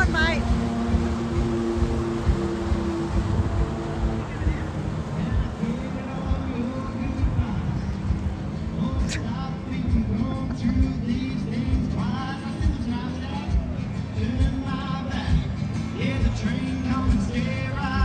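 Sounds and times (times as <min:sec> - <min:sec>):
steady low rumble: 0:00.0 - 0:18.0
person singing with music: 0:05.1 - 0:18.0.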